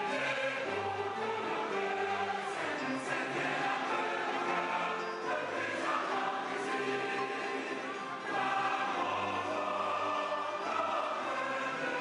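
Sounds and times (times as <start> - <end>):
choir singing sustained notes: 0.0 - 12.0.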